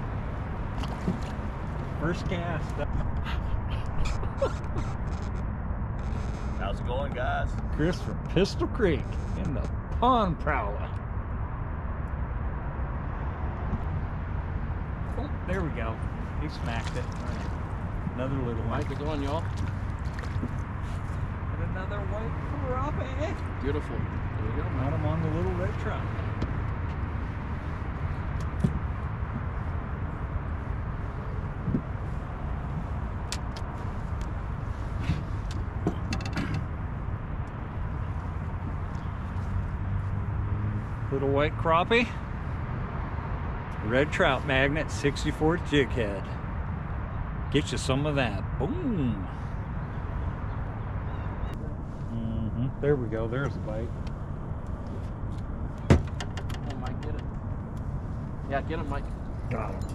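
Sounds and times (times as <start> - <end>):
fishing gear clicks and knocks: 35.2 - 36.7.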